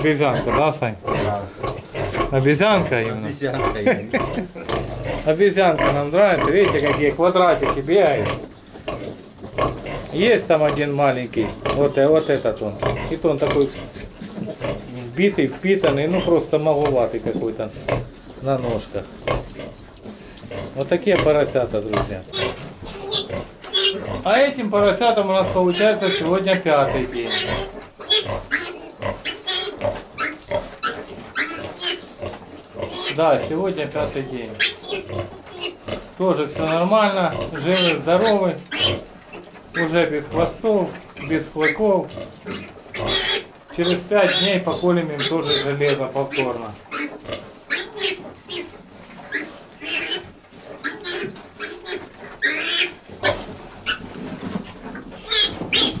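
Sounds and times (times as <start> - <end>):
piglets squealing and grunting: 0.0 - 56.0.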